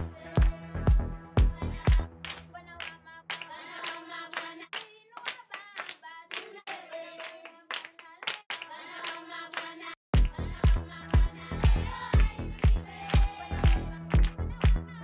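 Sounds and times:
children's choir chanting: 0.0 - 5.0, 6.2 - 15.0
hand claps: 1.8 - 14.9.

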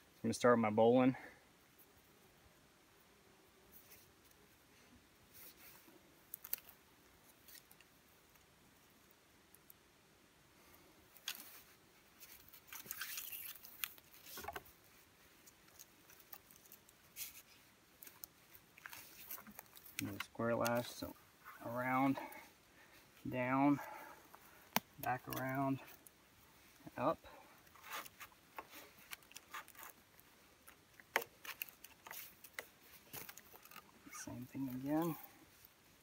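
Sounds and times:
cord rustling and scraping on wood: 5.3 - 8.5, 11.1 - 36.0.

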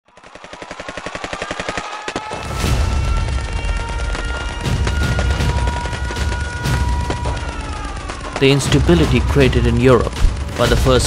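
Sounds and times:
machine-gun fire: 0.1 - 11.0.

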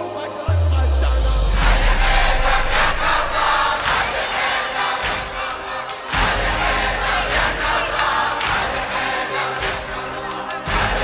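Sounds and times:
men chanting together: 0.1 - 11.0
strong beat: 0.5 - 8.6.

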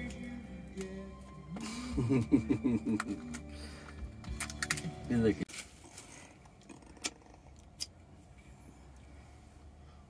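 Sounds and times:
laughter: 1.6 - 3.2.

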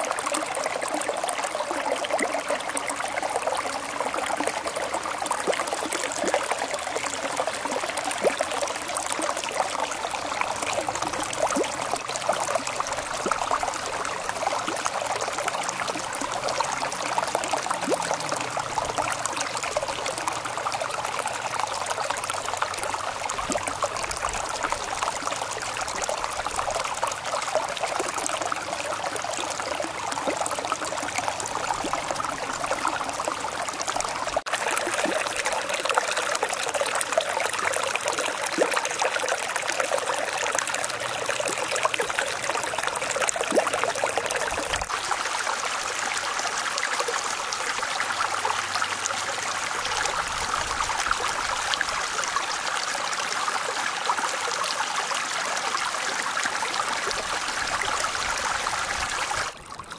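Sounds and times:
water trickling: 0.0 - 59.9.

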